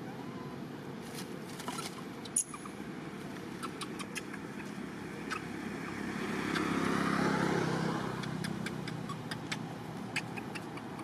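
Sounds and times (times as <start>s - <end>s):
motor vehicle passing by: 0.1s - 11.0s.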